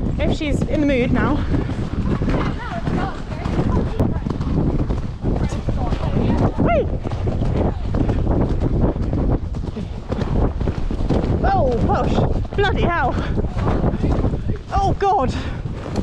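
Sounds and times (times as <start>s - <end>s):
horse hoofbeats: 0.0s - 16.0s
wind buffeting microphone: 0.0s - 16.0s.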